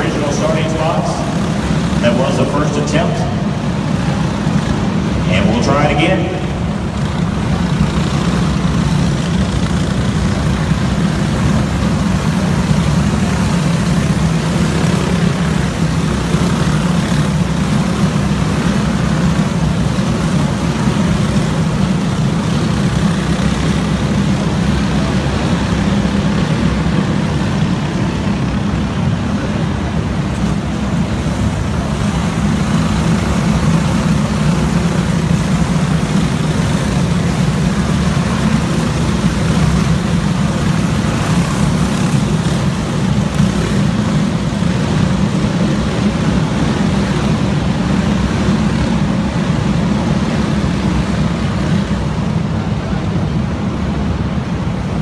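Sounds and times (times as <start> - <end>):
kart engines droning: 0.0 - 55.0.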